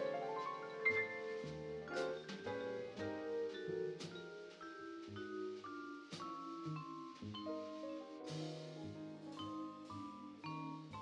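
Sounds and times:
drums: 0:00.0 - 0:11.0
piano: 0:00.0 - 0:11.0
vibraphone notes: 0:00.0 - 0:11.0.

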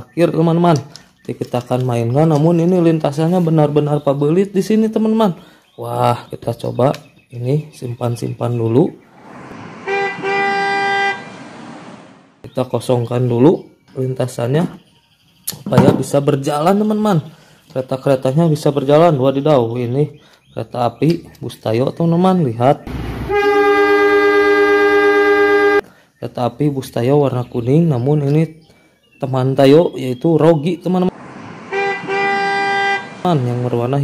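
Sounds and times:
cartoon vehicle horn beeps: 0:09.8 - 0:11.4, 0:22.9 - 0:25.8, 0:31.7 - 0:33.2
steam train whistle: 0:09.8 - 0:11.4, 0:23.1 - 0:25.8, 0:31.7 - 0:33.2.

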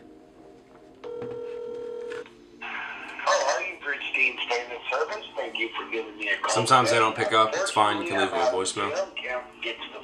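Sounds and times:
phone ringback tone: 0:01.0 - 0:02.3.

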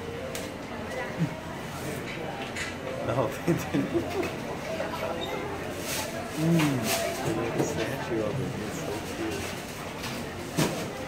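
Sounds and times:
murmur of shoppers' voices: 0:00.0 - 0:11.0.

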